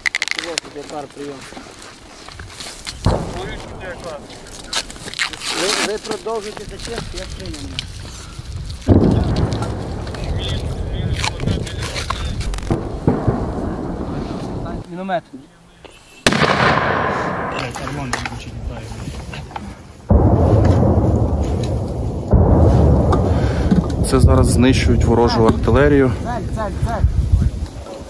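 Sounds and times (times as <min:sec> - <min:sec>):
mortar firing bangs: 0:03.0 - 0:06.2, 0:08.8 - 0:14.8, 0:16.2 - 0:18.7, 0:20.0 - 0:25.8
low rumble: 0:06.5 - 0:14.8, 0:20.0 - 0:27.4.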